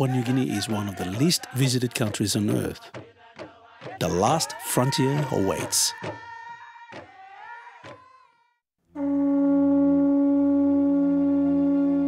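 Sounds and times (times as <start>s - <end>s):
conch shell trumpet note: 8.9s - 12.0s.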